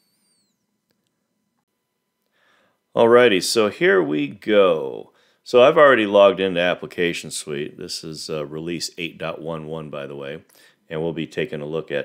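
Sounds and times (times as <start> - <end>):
faint high squeak: 0.0 - 0.8.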